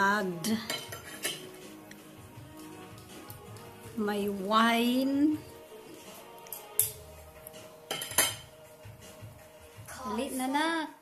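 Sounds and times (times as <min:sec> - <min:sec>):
faint background music: 0:00.0 - 0:11.0
dishes and cutlery clinking: 0:00.3 - 0:02.2, 0:07.6 - 0:08.8.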